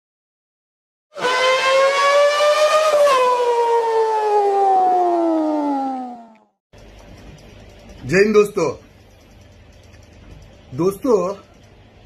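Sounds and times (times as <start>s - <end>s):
siren-like tone: 1.1s - 6.5s.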